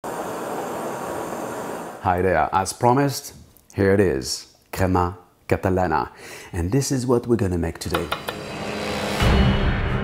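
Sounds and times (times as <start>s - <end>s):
blowtorch flame hissing: 0.0s - 2.6s.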